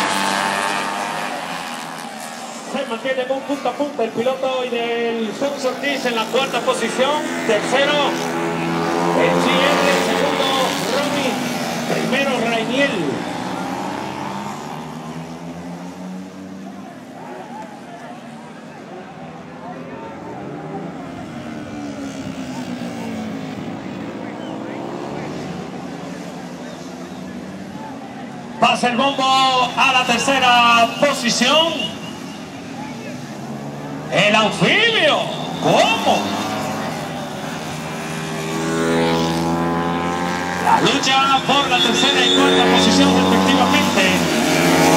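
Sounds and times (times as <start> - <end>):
racing motorcycles passing: 0.0 - 44.9.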